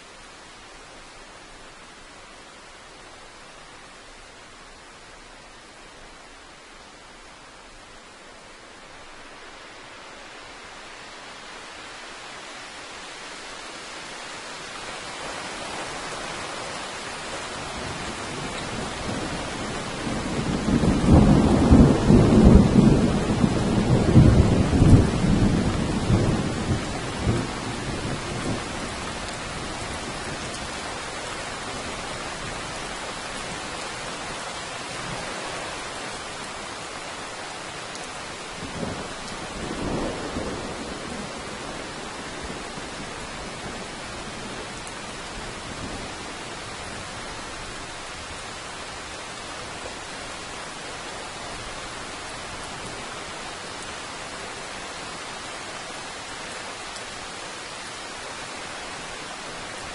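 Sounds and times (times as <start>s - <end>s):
steady rain: 0.0s - 59.9s.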